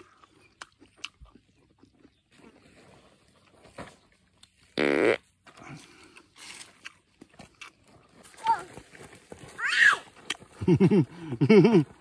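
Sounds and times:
loud rasping fart: 4.8s - 5.2s.

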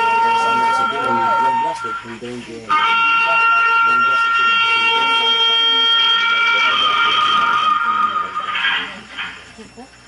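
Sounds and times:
long horn blast: 0.0s - 8.8s
low voices: 0.0s - 10.0s.

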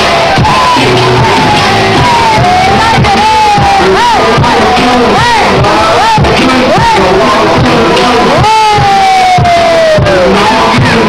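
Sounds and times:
long high yell: 0.0s - 6.1s, 8.3s - 10.8s
crowd shouting: 0.0s - 11.0s
loud dance music: 0.0s - 11.0s.

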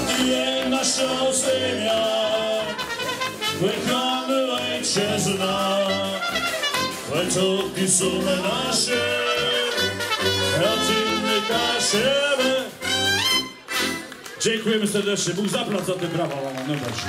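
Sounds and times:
trumpet melody: 0.0s - 14.3s
accordion accompaniment: 0.0s - 15.3s.

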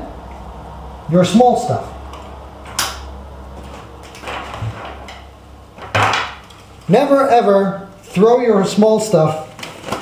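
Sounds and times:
low steady hum: 0.0s - 8.3s.

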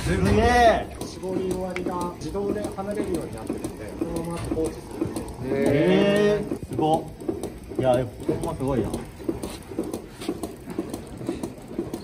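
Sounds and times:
milking machine rhythmic clicking: 0.0s - 12.0s.

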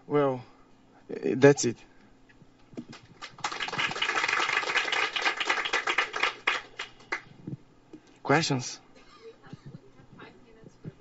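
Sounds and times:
audience applauding: 2.9s - 7.3s.

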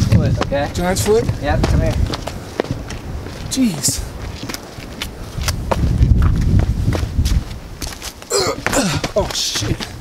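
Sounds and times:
footsteps on rock and leaves: 0.1s - 10.0s
low microphone rumble: 5.1s - 7.8s.

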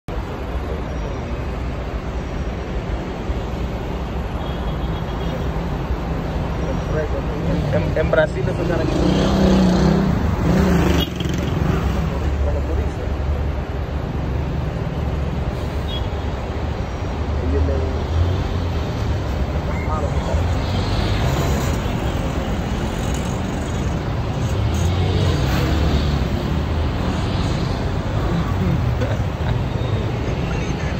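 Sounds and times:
road noise: 0.0s - 30.9s.

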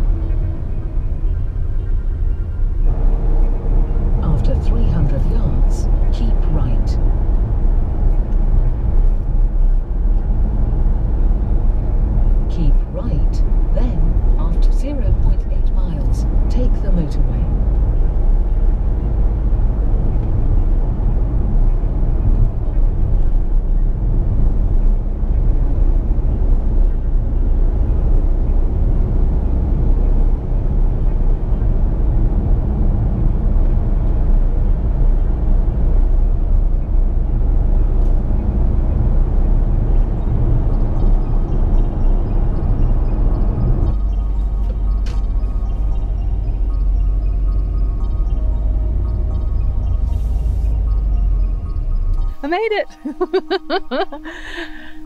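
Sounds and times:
road and engine noise in car cabin: 0.0s - 55.0s.

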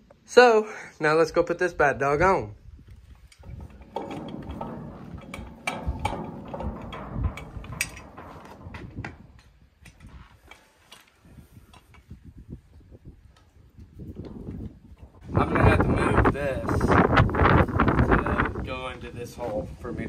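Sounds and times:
metal trailer jack clanking: 3.3s - 10.7s.

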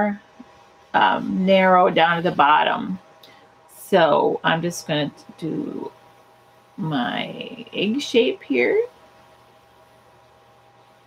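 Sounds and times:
faint steady hiss: 0.0s - 11.0s
light electrical hum: 0.0s - 11.0s.

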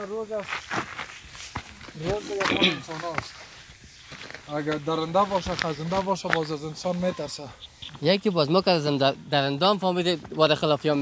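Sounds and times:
footsteps on rocky ground: 0.3s - 8.2s.

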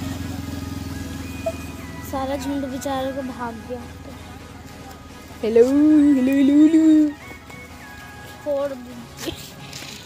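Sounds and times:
low pulsing engine drone: 0.0s - 4.6s.

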